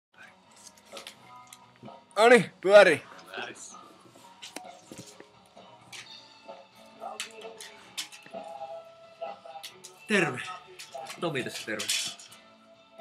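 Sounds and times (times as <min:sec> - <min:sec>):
faint music: 0:00.2 - 0:13.0.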